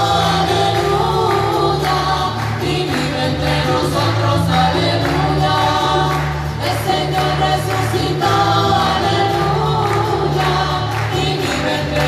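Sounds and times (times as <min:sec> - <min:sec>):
choir singing a hymn: 0:00.0 - 0:12.0
held bass notes: 0:00.0 - 0:12.0.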